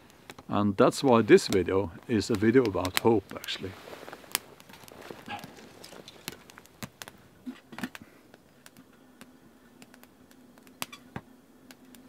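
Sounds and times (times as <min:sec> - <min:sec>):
wood fire crackling: 0:00.0 - 0:12.0
objects handled: 0:02.3 - 0:08.0.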